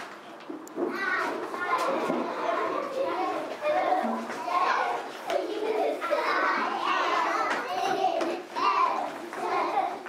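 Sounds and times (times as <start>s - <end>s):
children chattering and playing: 0.0s - 10.0s.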